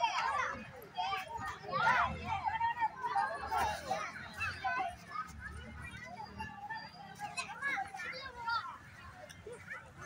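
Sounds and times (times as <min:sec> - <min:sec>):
children calling out and chattering: 0:00.0 - 0:10.0.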